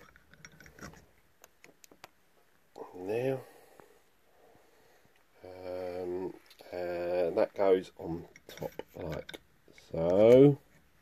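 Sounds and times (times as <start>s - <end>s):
small metal parts clicking: 0.0s - 1.0s.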